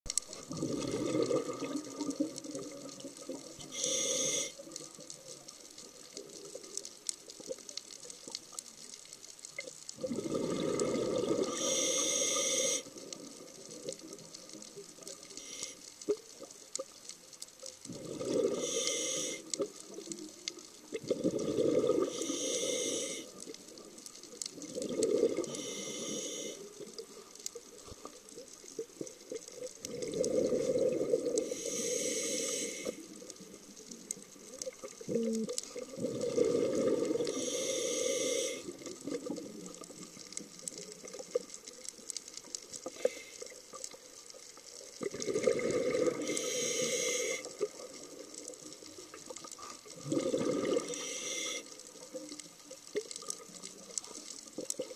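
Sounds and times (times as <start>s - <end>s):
scuba regulator bubbling exhalations: 0.3s - 4.8s, 10.0s - 13.8s, 17.9s - 19.8s, 20.9s - 23.4s, 24.6s - 26.5s, 29.8s - 33.1s, 34.6s - 40.0s, 45.0s - 48.2s, 49.2s - 52.2s
regulator hiss: 3.6s - 4.7s, 11.4s - 13.1s, 18.5s - 19.6s, 22.0s - 23.4s, 25.5s - 26.8s, 31.4s - 33.5s, 37.2s - 38.8s, 46.2s - 47.6s, 50.8s - 51.8s.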